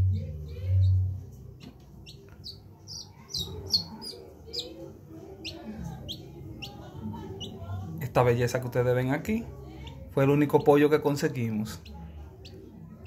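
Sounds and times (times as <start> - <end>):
chick peeping: 0.0 - 8.0, 9.7 - 13.0.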